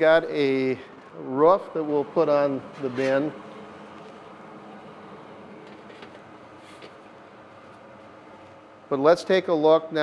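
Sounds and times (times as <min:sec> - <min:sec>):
blower running: 0:00.0 - 0:09.3.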